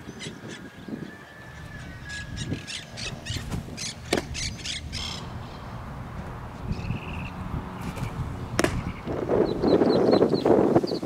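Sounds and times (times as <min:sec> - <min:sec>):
bird harsh calls: 0:00.0 - 0:11.0
sharp crack: 0:03.4 - 0:04.4, 0:07.9 - 0:09.2.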